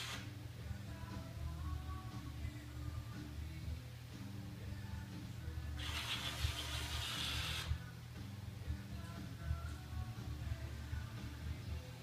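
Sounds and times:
toy motor and gears whirring: 0.0s - 0.2s, 5.8s - 7.7s.

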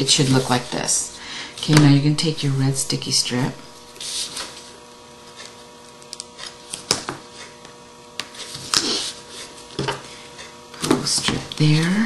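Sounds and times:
steady electrical hum: 0.0s - 12.0s
paper rustling: 4.0s - 4.7s.

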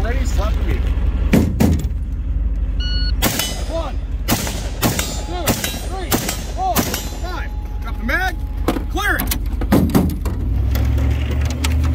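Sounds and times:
diesel engine running: 0.0s - 11.9s
shot timer beep: 2.8s - 3.2s.

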